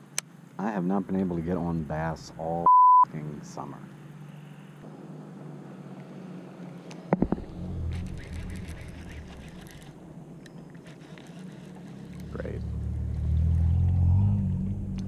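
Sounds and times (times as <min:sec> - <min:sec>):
fishing reel clicks and knocks: 0:07.9 - 0:12.0.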